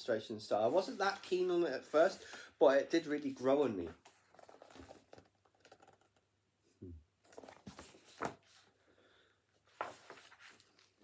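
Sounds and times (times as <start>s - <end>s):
book pages rustling and clicking: 7.3s - 8.7s, 9.7s - 11.0s.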